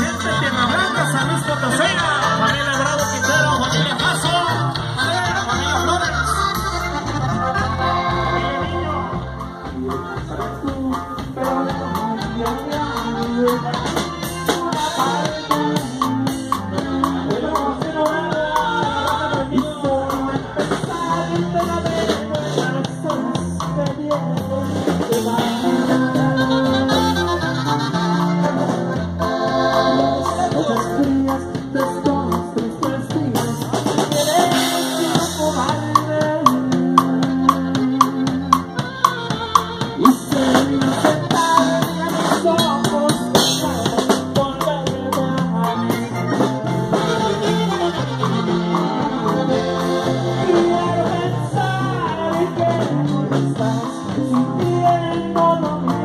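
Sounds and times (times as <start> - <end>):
drum kit beat: 0.0 - 56.0
live band with saxophone: 0.0 - 56.0.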